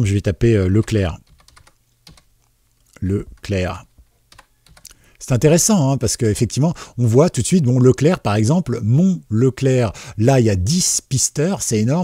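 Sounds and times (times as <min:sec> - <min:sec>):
quiet keyboard keystrokes: 0:00.8 - 0:02.3, 0:04.3 - 0:05.0.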